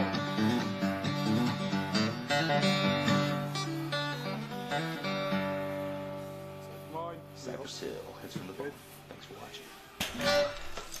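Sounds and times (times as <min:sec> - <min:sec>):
hip-hop music: 0:00.0 - 0:11.0.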